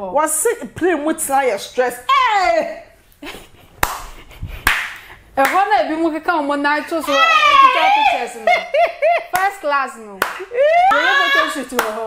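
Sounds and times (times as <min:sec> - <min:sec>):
sharp hand claps: 0:03.8 - 0:05.6, 0:10.2 - 0:11.0, 0:11.7 - 0:12.0.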